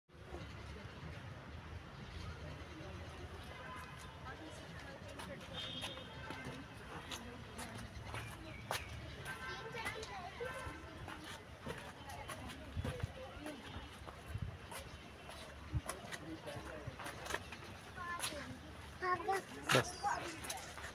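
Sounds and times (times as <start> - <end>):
child calling and babbling: 18.0 - 20.4.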